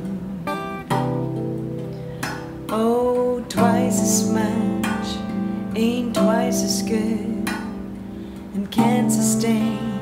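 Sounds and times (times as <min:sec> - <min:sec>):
electric guitar chord ringing: 0:00.0 - 0:10.0
steel tongue drum: 0:00.0 - 0:10.0.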